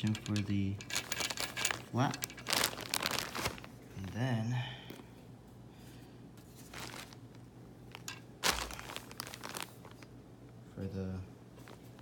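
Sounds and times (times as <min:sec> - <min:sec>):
plastic sheet crinkling: 0:01.0 - 0:03.8, 0:06.6 - 0:10.1.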